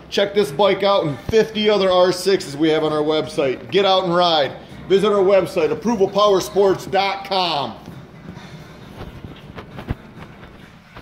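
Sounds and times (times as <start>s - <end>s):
footsteps: 0.2s - 11.0s.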